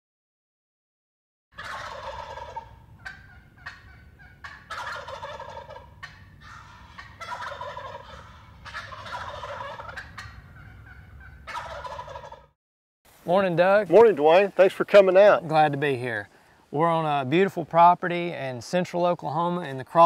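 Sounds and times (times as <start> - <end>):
turkey gobbling: 1.6 - 12.6.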